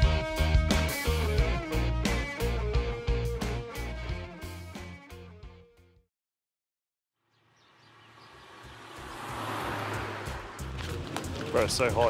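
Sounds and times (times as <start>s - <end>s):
street traffic: 7.3s - 12.0s.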